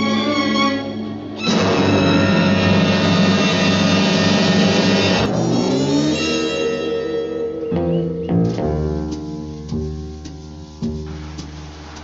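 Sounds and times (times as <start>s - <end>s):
fast rolling tremor: 0.0s - 6.9s
orchestra holding loud chord: 0.0s - 7.7s.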